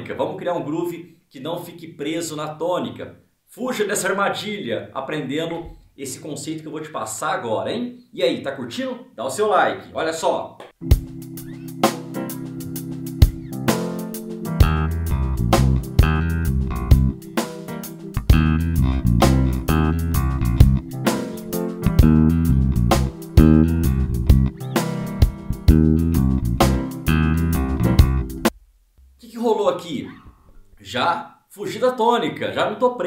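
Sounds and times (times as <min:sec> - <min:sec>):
backing track with drums: 0:10.7 - 0:29.3
electric bass bluesy groove: 0:10.9 - 0:17.4, 0:18.0 - 0:28.5.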